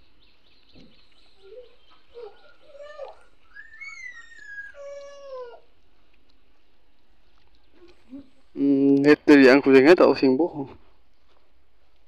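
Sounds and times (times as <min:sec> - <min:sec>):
animal cries gliding in pitch: 0:01.4 - 0:05.7.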